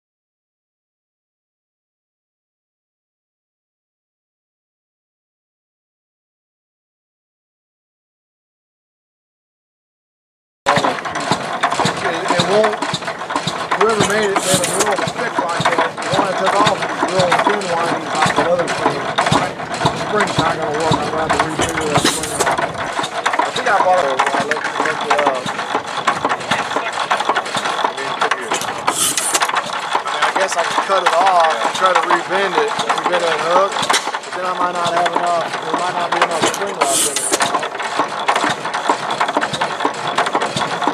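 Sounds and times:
people talking: 10.7 - 11.1, 11.8 - 12.9, 13.7 - 22.6, 23.5 - 25.6, 26.2 - 29.5, 30.1 - 37.7
single-cylinder gas engine running: 10.7 - 40.9.

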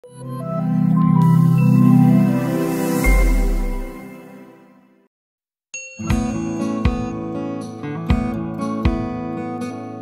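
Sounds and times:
logo intro music: 0.1 - 5.0
bright ringing chime: 1.3 - 4.6.

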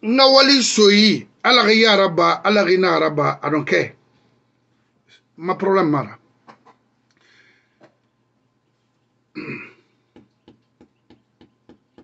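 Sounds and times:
man clearing throat: 9.4 - 9.9.

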